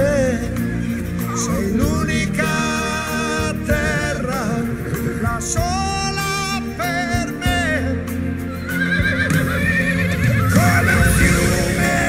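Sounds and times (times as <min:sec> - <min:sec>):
background music: 0:00.0 - 0:12.0
horses whinnying: 0:08.5 - 0:11.9.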